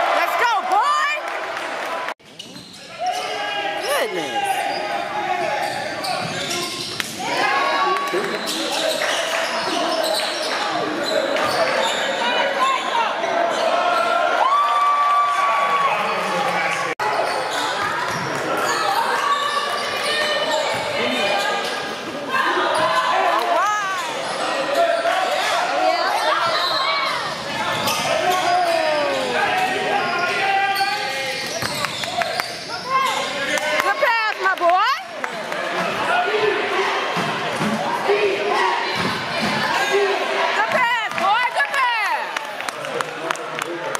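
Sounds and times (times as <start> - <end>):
sneakers squeaking: 2.2 - 7.5, 8.1 - 14.2, 17.0 - 22.1, 23.8 - 33.6
people calling out and talking: 2.9 - 14.6, 15.7 - 42.6.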